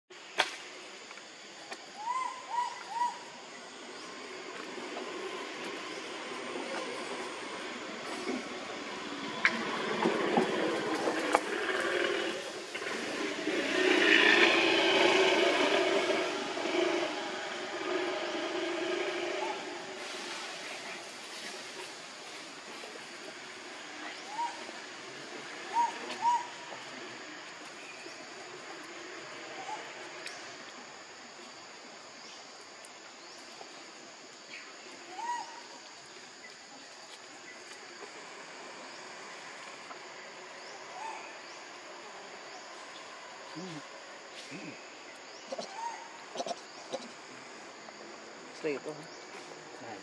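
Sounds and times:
swell of mixed noise: 0:10.7 - 0:21.2.

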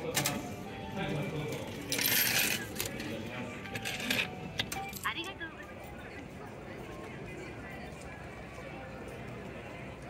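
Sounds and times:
coins rattling into tray: 0:01.7 - 0:03.1, 0:03.7 - 0:05.1.

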